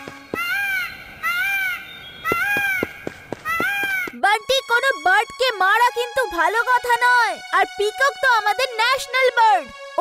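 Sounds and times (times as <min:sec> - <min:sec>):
peacock calling: 0:00.0 - 0:04.2.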